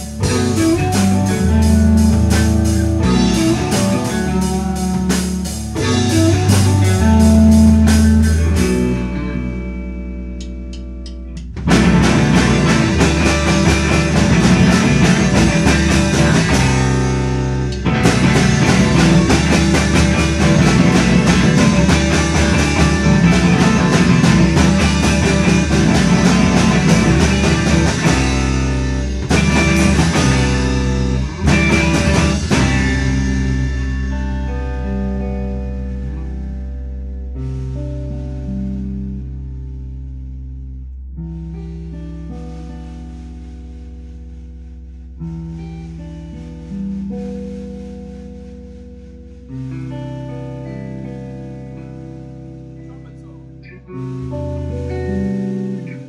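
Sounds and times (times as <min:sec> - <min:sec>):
rock band playing: 0:00.0 - 0:40.4, 0:41.3 - 0:56.0
held guitar notes: 0:00.0 - 0:56.0.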